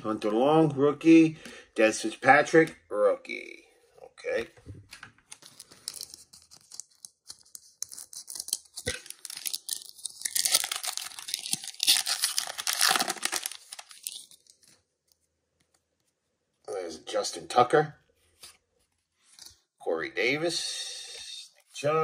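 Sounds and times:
foil wrapper tearing and crinkling: 7.8 - 14.8.

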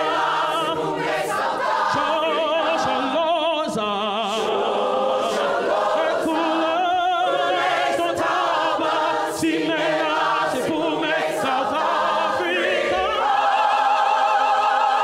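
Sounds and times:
choir singing: 0.0 - 15.0
man singing into a microphone: 2.0 - 4.5.

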